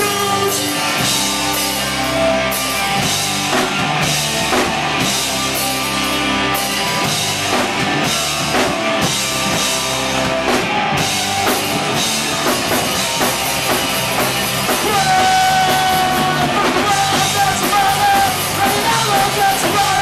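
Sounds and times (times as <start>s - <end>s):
punk rock band playing: 0.0s - 20.0s.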